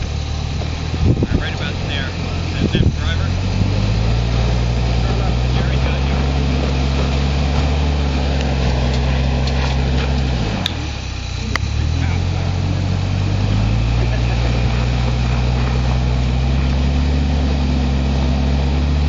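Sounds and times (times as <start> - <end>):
suv engine running under load: 0.0 - 19.0.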